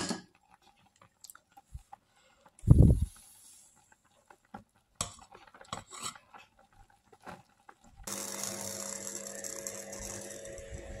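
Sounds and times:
machine hum with hiss: 8.1 - 11.0.

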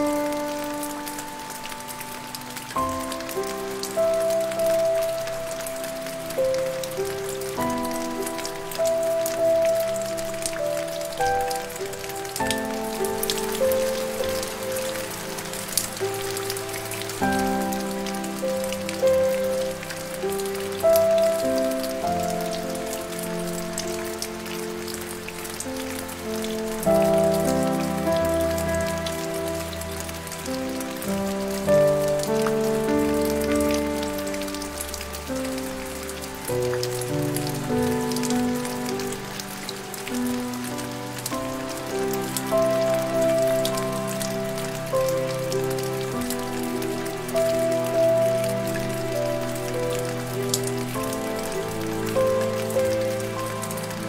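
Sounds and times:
dense rain patter: 0.0 - 54.0
soft slow piano music: 0.0 - 54.0.

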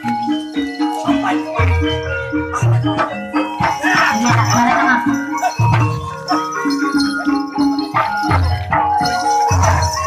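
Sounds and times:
gamelan struck pitched notes: 0.0 - 10.0
sharp percussion strikes: 0.0 - 10.0.

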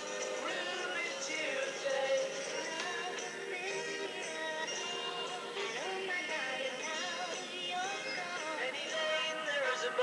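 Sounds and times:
pop song with singing: 0.0 - 10.0.

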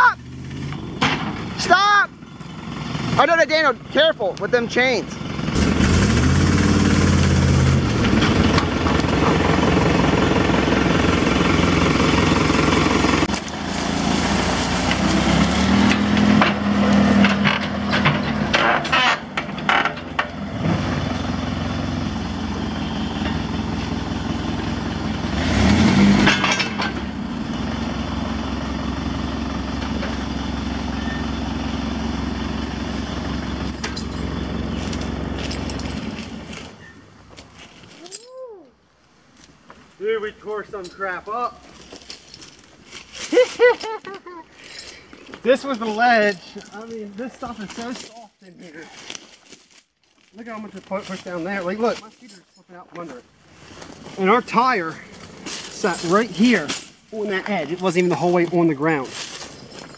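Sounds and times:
heavy engines working under load: 0.0 - 59.9.

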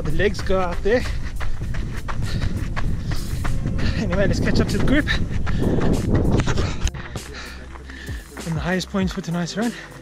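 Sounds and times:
wind buffeting microphone: 0.0 - 8.3
footfalls on a dirt trail: 0.0 - 10.0.

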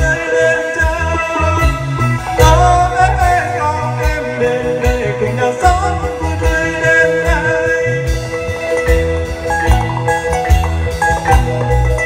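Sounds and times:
bass: 0.0 - 12.0
drum kit: 0.0 - 12.0
electric guitar: 0.0 - 12.0
keyboard: 0.0 - 12.0
man singing amplified: 0.0 - 12.0.

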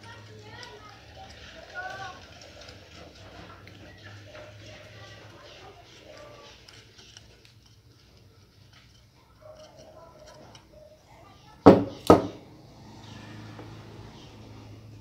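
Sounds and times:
indistinct voices talking: 0.0 - 15.0.

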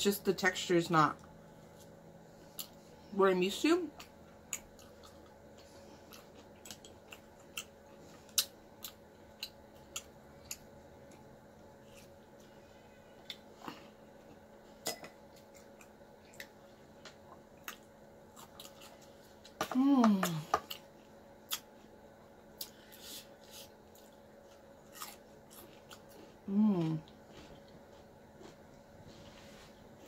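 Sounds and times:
chewing and mouth sounds: 3.9 - 12.5, 13.2 - 19.6, 20.3 - 21.8.

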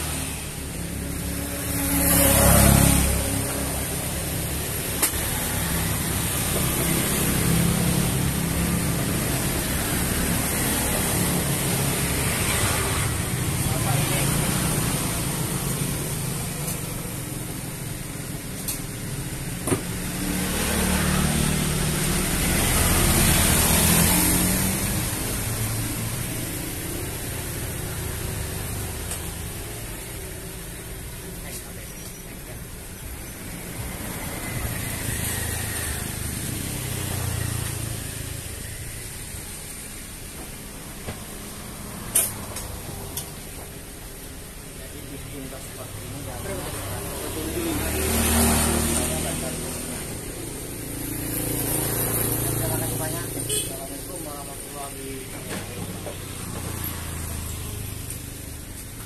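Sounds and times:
road traffic passing: 0.0 - 59.0.

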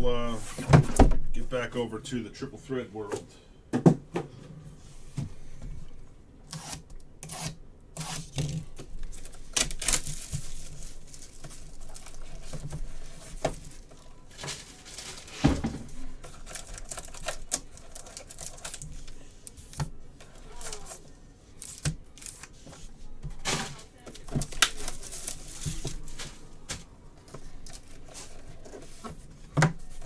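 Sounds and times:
plastic wrap crinkling and tearing: 6.5 - 15.4, 16.0 - 22.6, 23.8 - 26.7, 27.3 - 29.1.

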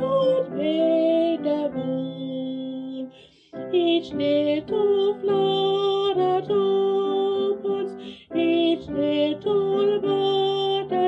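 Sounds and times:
upright piano accompaniment: 0.0 - 11.0
woman singing a hymn: 0.0 - 11.0.

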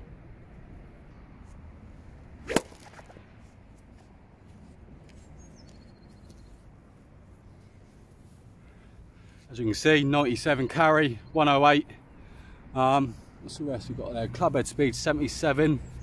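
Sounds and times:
golf club striking ball: 2.4 - 3.2.

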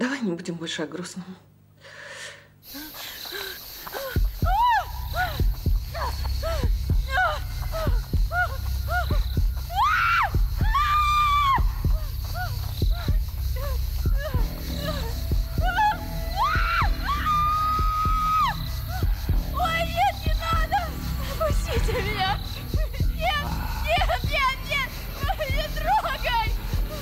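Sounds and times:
woman gasping and screaming: 2.1 - 25.7
low droning music: 3.9 - 27.0.

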